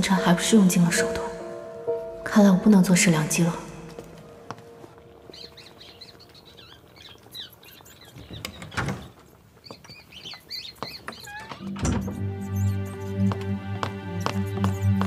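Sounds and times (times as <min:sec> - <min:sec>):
background music with low notes: 0:00.0 - 0:06.5, 0:11.5 - 0:15.0
small caged birds chirping: 0:05.2 - 0:13.3.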